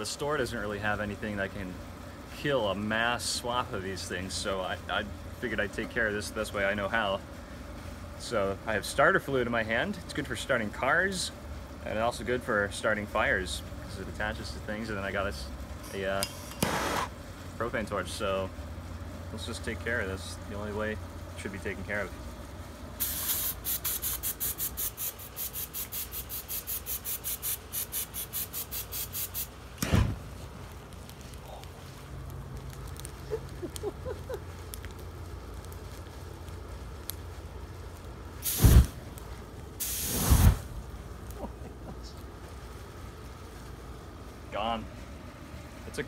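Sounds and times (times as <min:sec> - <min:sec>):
fire burning: 0:00.0 - 0:46.0
aerosol can spraying hiss: 0:23.0 - 0:29.6, 0:38.4 - 0:39.0, 0:39.8 - 0:40.7
loud fire burst: 0:29.8 - 0:30.3, 0:38.4 - 0:39.0, 0:39.8 - 0:40.7.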